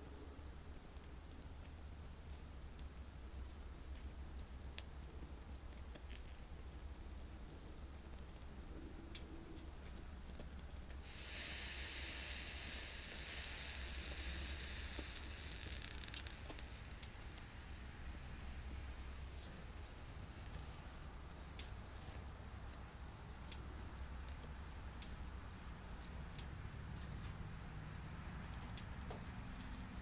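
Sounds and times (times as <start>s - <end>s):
steady sizzling hiss: 0.0s - 30.0s
twig fire crackling: 0.0s - 30.0s.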